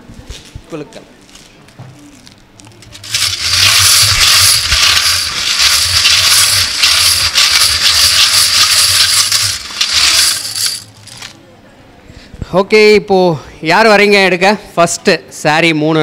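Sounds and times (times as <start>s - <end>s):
metal tokens rattling in a vessel: 2.9s - 11.4s.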